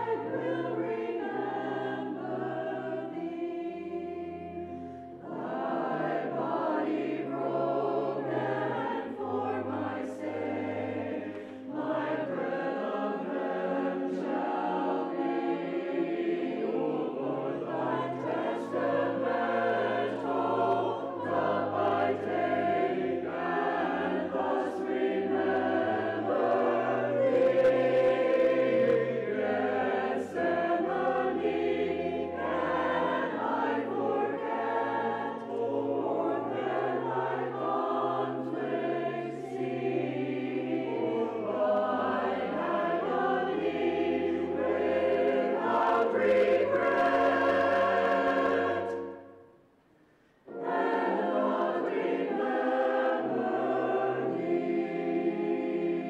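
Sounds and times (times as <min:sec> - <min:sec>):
choir singing: 0:00.0 - 0:49.6, 0:50.4 - 0:56.0.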